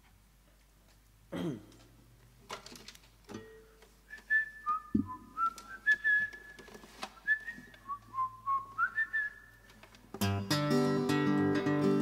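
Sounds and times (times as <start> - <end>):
person whistling a tune: 4.1 - 9.7
low knock: 5.0 - 5.2.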